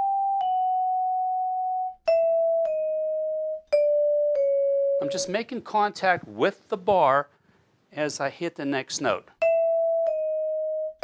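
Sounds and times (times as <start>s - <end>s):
vibraphone notes struck with mallets: 0.0s - 5.4s, 9.4s - 11.0s.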